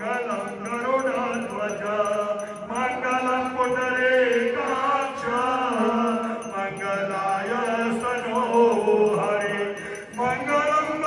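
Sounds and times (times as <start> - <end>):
hymn sung as a chant: 0.0 - 11.0.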